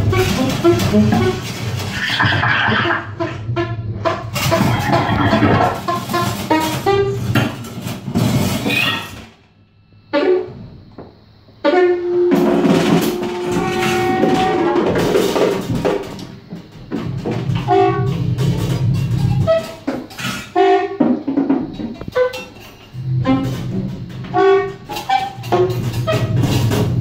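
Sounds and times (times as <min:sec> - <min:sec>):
saxophone: 0:00.0 - 0:07.3, 0:11.6 - 0:15.4, 0:19.4 - 0:21.1, 0:22.0 - 0:27.0
drum kit hits: 0:12.2 - 0:16.1.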